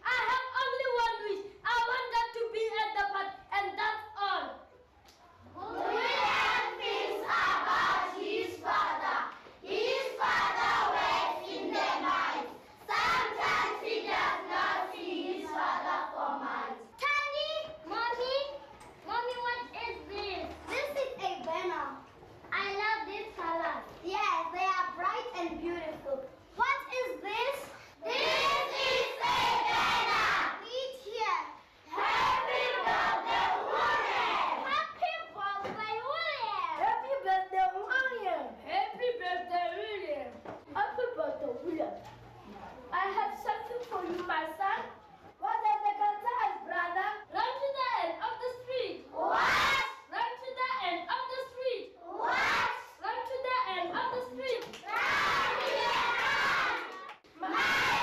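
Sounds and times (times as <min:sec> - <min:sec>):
children calling out in chorus: 0:54.9 - 0:58.0.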